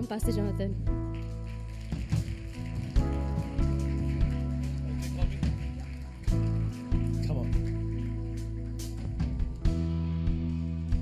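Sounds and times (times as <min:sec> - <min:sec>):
audience clapping: 0:00.7 - 0:11.0
steady bass: 0:02.9 - 0:11.0
keyboard and guitar chords: 0:03.0 - 0:11.0.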